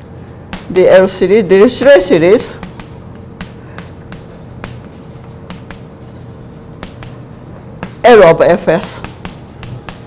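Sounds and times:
chalk tapping and scratching: 0.0 - 0.8, 1.8 - 10.0
faint steady hum: 0.0 - 10.0.

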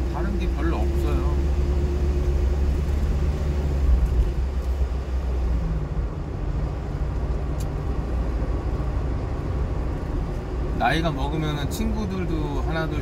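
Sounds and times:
engine and road rumble in cabin: 0.0 - 13.0.

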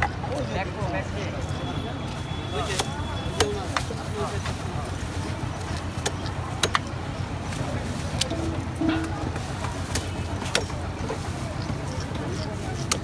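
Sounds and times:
faint voices: 0.0 - 13.0
low street rumble: 0.0 - 13.0.

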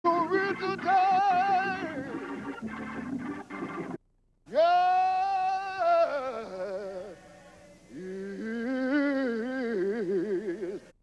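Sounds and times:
man singing into a microphone: 0.1 - 2.1, 4.5 - 7.2, 7.9 - 10.8.

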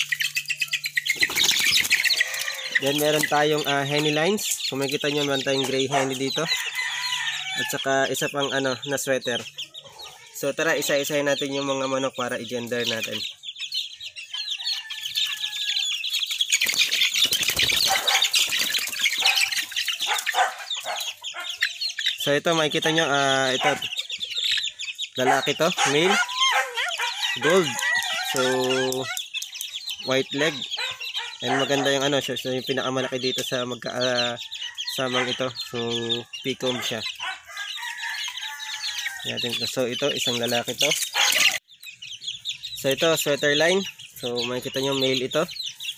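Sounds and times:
wings flapping and scuffling: 0.0 - 5.8, 15.2 - 22.2, 40.2 - 41.6
chicks peeping: 0.0 - 45.9
rooster crowing: 6.3 - 7.9, 14.4 - 16.0, 26.0 - 29.0, 37.2 - 39.4.

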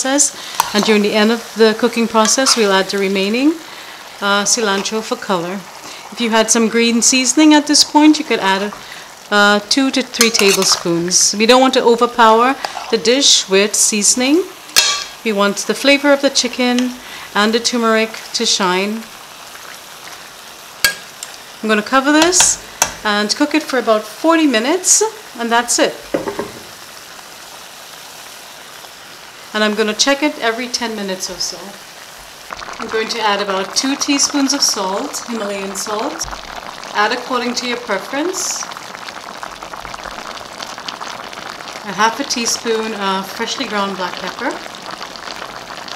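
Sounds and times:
food sizzling in a pot: 0.0 - 45.9
spoon clinking against pot: 14.8 - 15.2.

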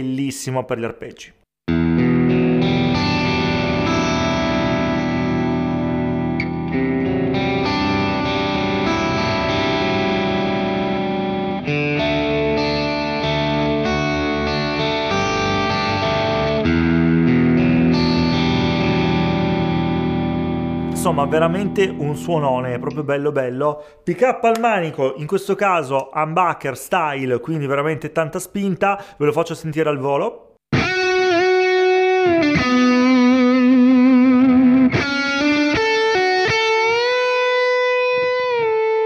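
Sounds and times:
electric guitar arpeggiated chords: 1.7 - 23.4, 30.7 - 39.0.

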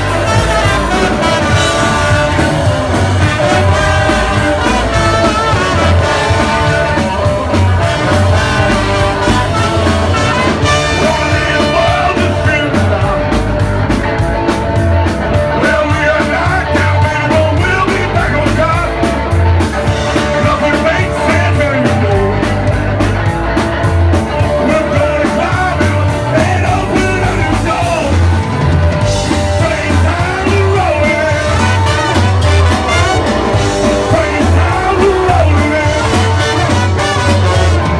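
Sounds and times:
man singing: 0.0 - 14.5, 15.3 - 23.1, 24.3 - 37.9
drums playing steady beat: 0.0 - 37.9
electric guitar: 0.0 - 37.9
upright bass: 0.0 - 37.9.

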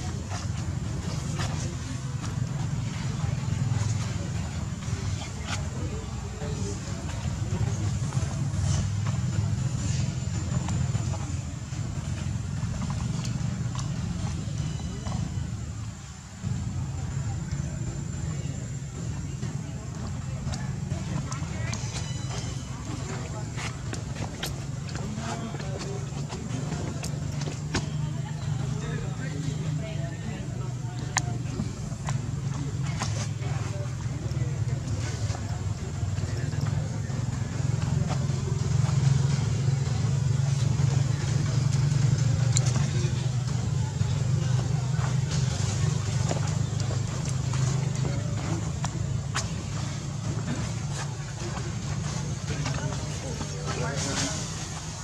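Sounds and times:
engine humming: 0.0 - 55.0.

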